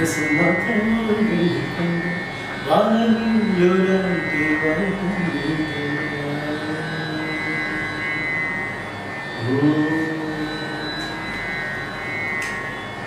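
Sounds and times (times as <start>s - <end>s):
long held musical notes: 0.0s - 13.0s
steady high drone: 0.0s - 13.0s.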